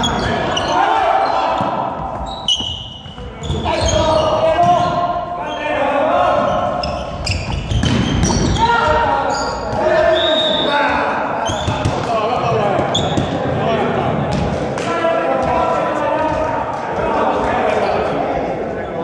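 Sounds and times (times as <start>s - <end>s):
sneakers squeaking on court: 0.0s - 5.2s, 6.4s - 10.7s, 11.4s - 13.4s
players shouting: 0.0s - 7.1s, 7.8s - 14.2s.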